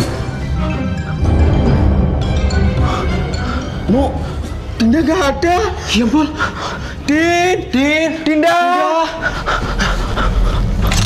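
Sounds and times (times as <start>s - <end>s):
person panting hard: 2.7s - 4.7s, 5.8s - 7.1s, 9.1s - 11.0s.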